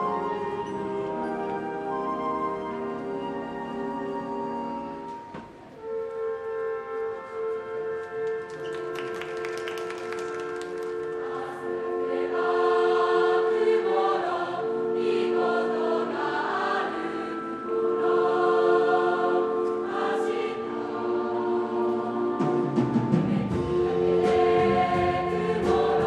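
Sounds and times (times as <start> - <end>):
wind band playing chords: 0.0 - 26.0
crowd of voices singing: 11.2 - 26.0.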